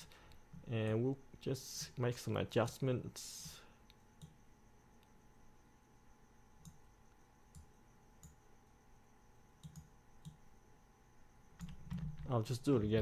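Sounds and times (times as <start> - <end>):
quiet background hum: 0.0 - 13.0
computer mouse clicks: 3.9 - 4.4, 6.6 - 6.8, 7.5 - 8.4, 9.6 - 10.4.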